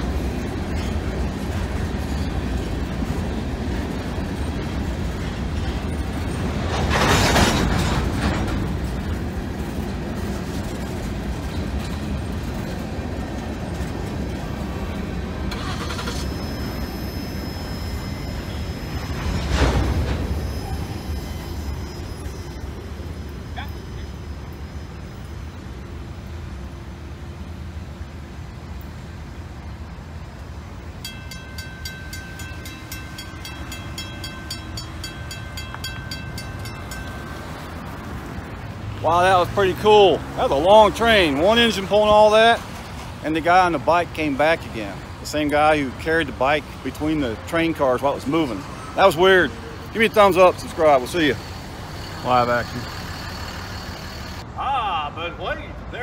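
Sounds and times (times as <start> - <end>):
train wheels rumbling on rails: 0.0 - 54.5
crossing bell ringing: 13.7 - 26.4, 30.8 - 54.4.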